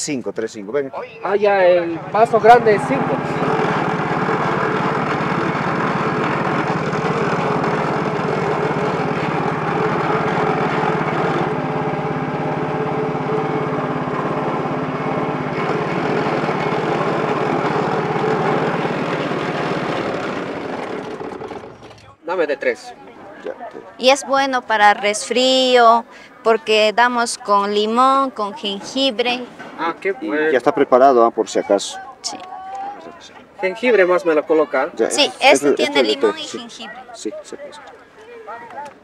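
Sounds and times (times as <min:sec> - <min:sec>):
juice press motor running: 0:02.0 - 0:22.1
cane stalks crushed by rollers: 0:15.3 - 0:22.2.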